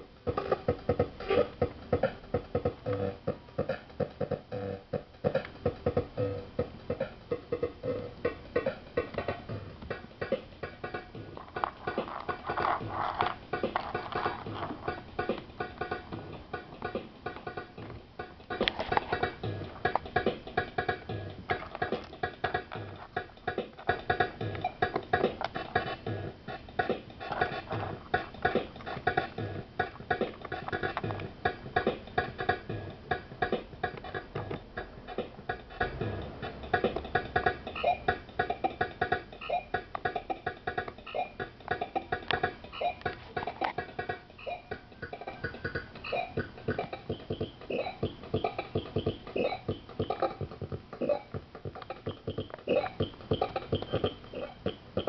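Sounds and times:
glitchy drum machine beat: 0.0s - 55.0s.

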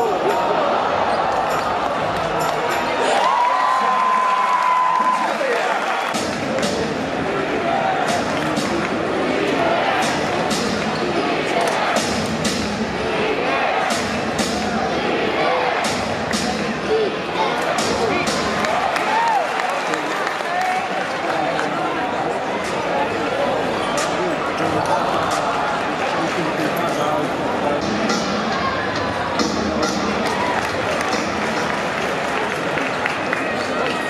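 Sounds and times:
crowd murmur and chatter: 0.0s - 34.0s.

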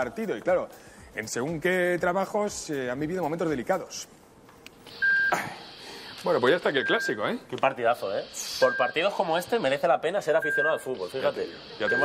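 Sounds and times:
faint room hiss: 0.0s - 12.0s
monitor beep: 4.8s - 12.0s.

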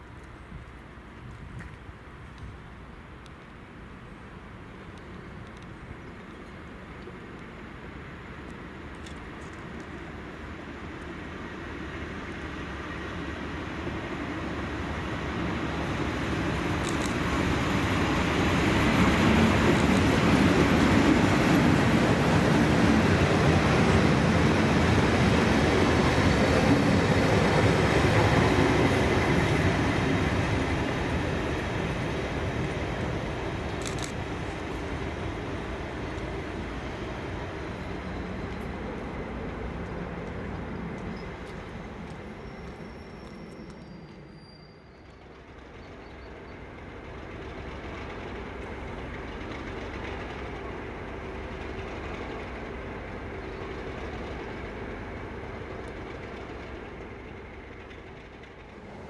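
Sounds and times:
diesel locomotive engine: 0.0s - 59.0s
train wheels on rails: 0.0s - 59.0s.

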